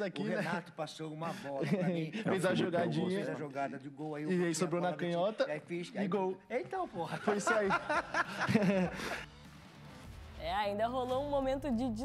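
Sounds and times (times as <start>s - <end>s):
men laughing and talking: 0.0s - 9.4s
faint background music: 0.0s - 12.0s.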